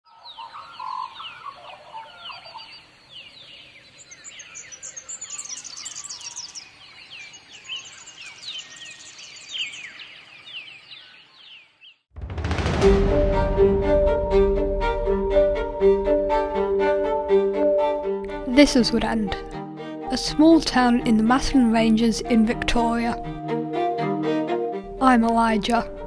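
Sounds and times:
birds chirping: 0.1s - 12.0s.

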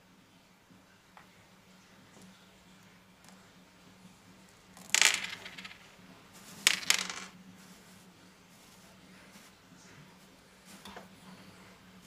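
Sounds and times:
candies clattering onto tabletop: 4.8s - 5.9s, 6.6s - 7.4s.

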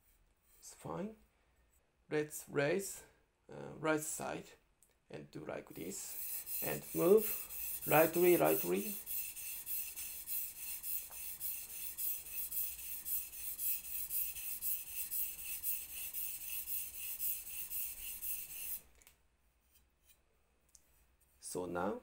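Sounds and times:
knife rasping on whetstone: 5.9s - 18.8s.

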